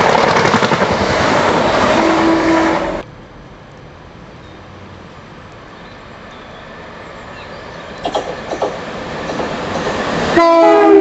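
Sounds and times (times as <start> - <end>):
train running noise: 0.0 - 11.0.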